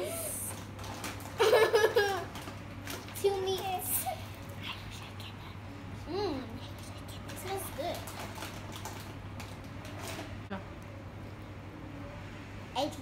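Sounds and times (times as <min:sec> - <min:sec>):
child vocal sounds: 0:00.0 - 0:00.5, 0:03.8 - 0:08.0
child laughing: 0:01.4 - 0:02.4.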